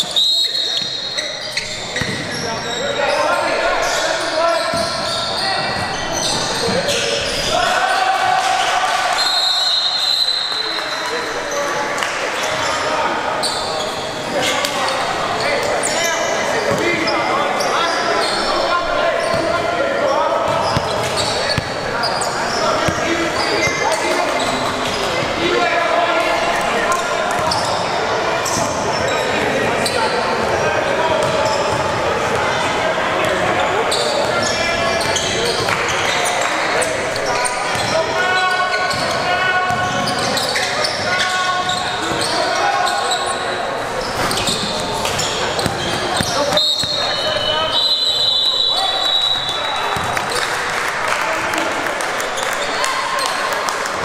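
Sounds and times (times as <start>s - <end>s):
echoing chatter: 0.0s - 54.0s
ball bouncing on wooden court: 2.0s - 2.3s, 20.5s - 21.8s, 44.3s - 47.0s.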